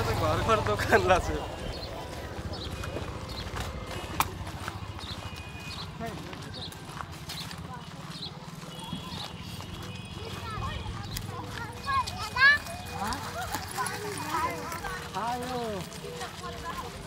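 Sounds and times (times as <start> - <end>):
distant crowd voices: 0.0 - 17.0.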